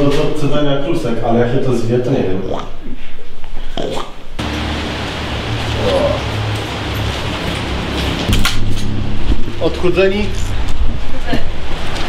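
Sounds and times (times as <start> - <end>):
low hum: 4.4 - 12.0.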